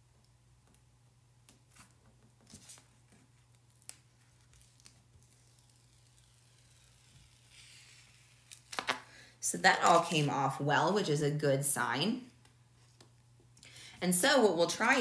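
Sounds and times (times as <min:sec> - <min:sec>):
low steady hum: 0:00.0 - 0:15.0
tape and vinyl backing crinkling: 0:01.4 - 0:10.6.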